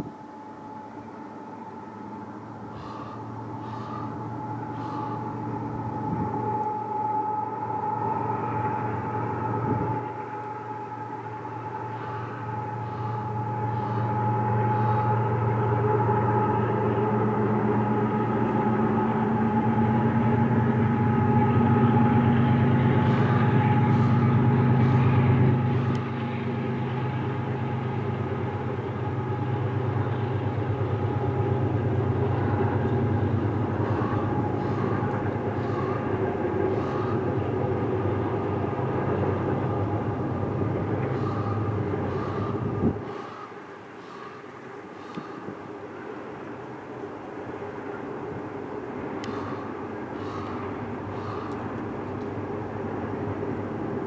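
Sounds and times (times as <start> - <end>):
diesel locomotive drone: 0.0 - 54.0
freight cars rumbling by: 0.0 - 54.0.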